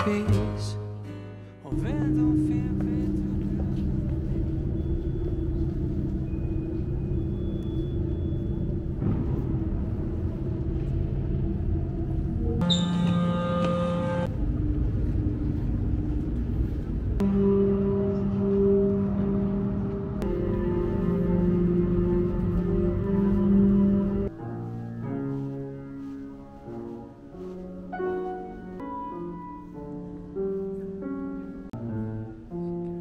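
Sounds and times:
ambient drone music: 0:01.0 - 0:33.0
bright high tones: 0:01.7 - 0:08.9, 0:12.6 - 0:14.3.

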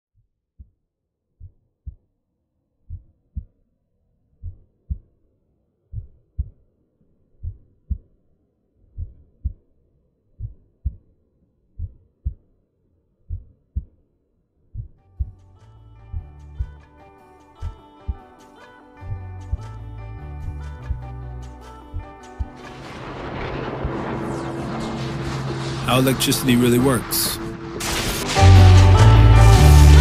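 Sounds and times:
slow heartbeat thumps: 0:02.9 - 0:03.6, 0:04.4 - 0:05.2, 0:05.9 - 0:06.6, 0:07.4 - 0:08.2, 0:08.9 - 0:09.7, 0:10.4 - 0:11.1, 0:11.8 - 0:12.5, 0:13.3 - 0:14.0, 0:14.8 - 0:15.4
music with sustained notes: 0:15.4 - 0:30.0.

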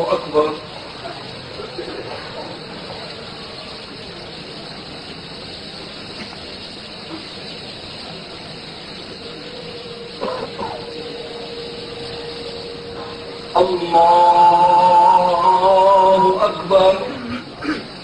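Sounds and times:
faint steady hum: 0:00.0 - 0:18.0
hissing congregation background: 0:00.0 - 0:18.0.

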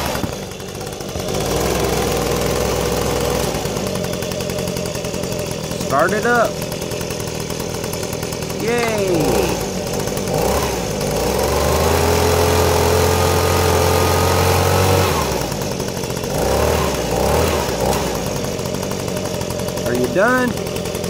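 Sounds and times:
toy leaf blower engine sound: 0:00.0 - 0:21.0.

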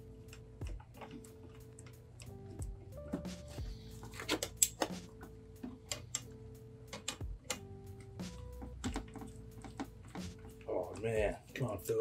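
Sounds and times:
music of held notes: 0:00.0 - 0:12.0.

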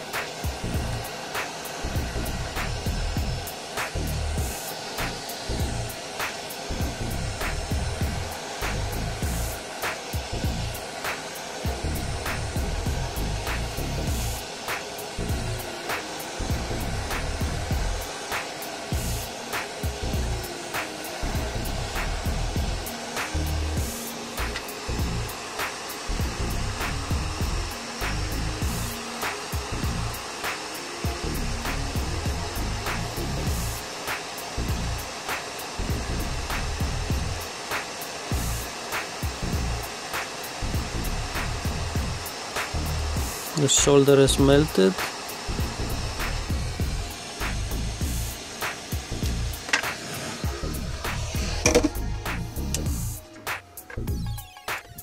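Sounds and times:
background music with steady beat: 0:00.0 - 0:55.0
hot-air station blowing: 0:00.0 - 0:55.0.

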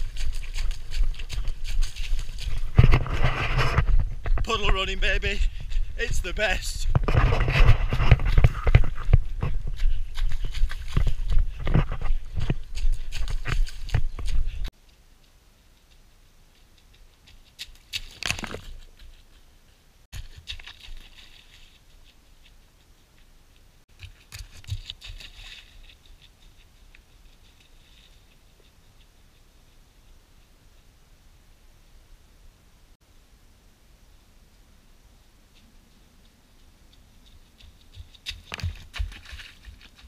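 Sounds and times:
runner's footfalls: 0:00.0 - 0:14.7, 0:23.9 - 0:26.4, 0:37.2 - 0:40.0
faint outdoor sounds: 0:00.0 - 0:40.0.

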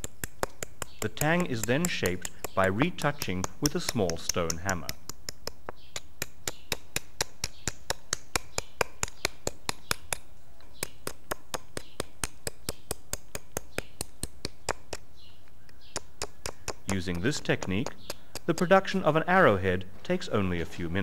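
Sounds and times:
stone hammer tapping blade: 0:00.0 - 0:10.2.

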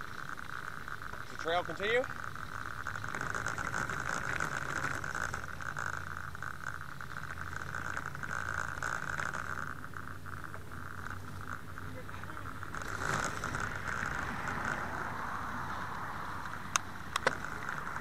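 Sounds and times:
bicycle rattling while ridden: 0:00.0 - 0:18.0
higher pulsing insect trill: 0:00.0 - 0:18.0
night insects trilling: 0:00.0 - 0:18.0.

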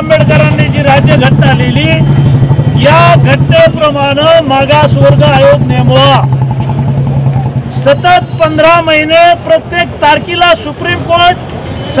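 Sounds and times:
man talking: 0:00.0 - 0:02.1, 0:02.7 - 0:06.3, 0:07.7 - 0:12.0.

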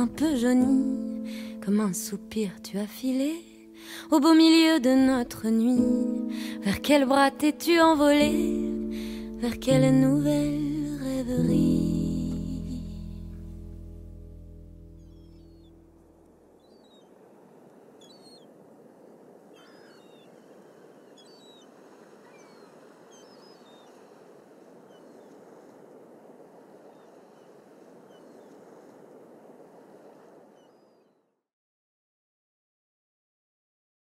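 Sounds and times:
beach surf: 0:00.0 - 0:31.2
song music: 0:08.2 - 0:15.1.

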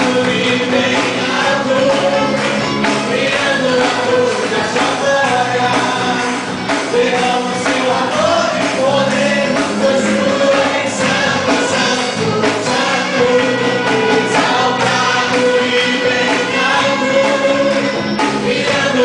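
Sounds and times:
group singing: 0:00.0 - 0:19.0
male lead singer: 0:00.0 - 0:19.0
worship band playing: 0:00.0 - 0:19.0.

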